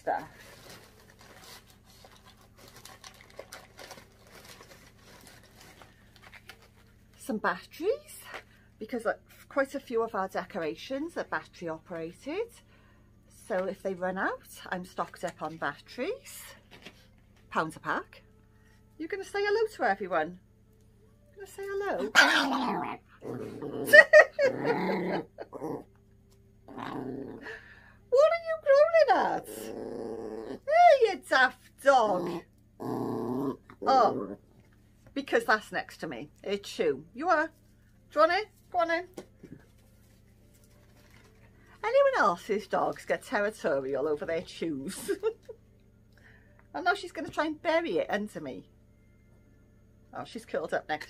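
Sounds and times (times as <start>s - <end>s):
bags and packaging rustling: 0.0s - 7.2s, 39.5s - 41.8s
small clicks and crackles: 0.4s - 6.9s
small dog growling: 22.0s - 26.0s, 26.6s - 27.7s, 29.2s - 30.8s, 32.0s - 34.6s.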